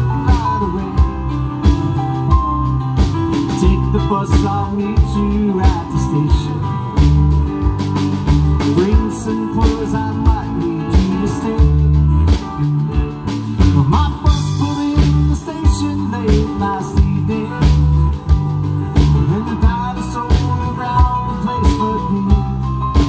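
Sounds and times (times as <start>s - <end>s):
drum kit beat: 0.0s - 23.0s
guitars: 0.0s - 23.0s
keyboards: 0.0s - 23.0s.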